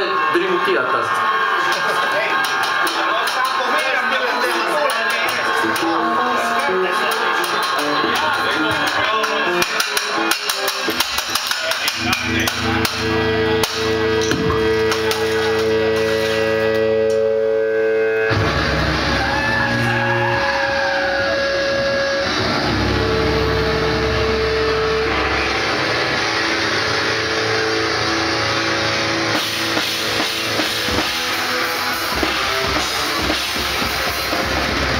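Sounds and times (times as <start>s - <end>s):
wavering whine: 11.9s - 34.2s
held electronic tones: 12.0s - 28.9s.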